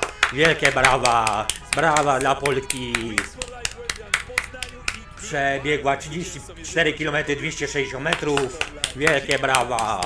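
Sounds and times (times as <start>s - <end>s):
hands clapping: 0.0s - 5.4s, 8.0s - 10.0s
faint voices: 0.0s - 10.0s.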